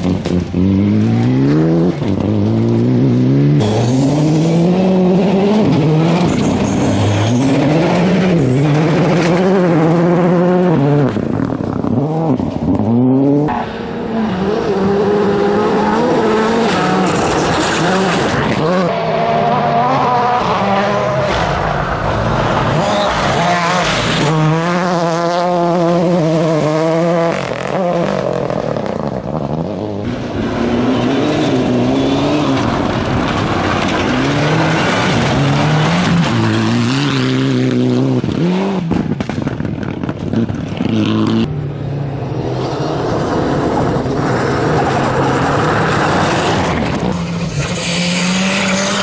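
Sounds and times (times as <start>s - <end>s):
rally car engines revving: 0.0s - 49.0s.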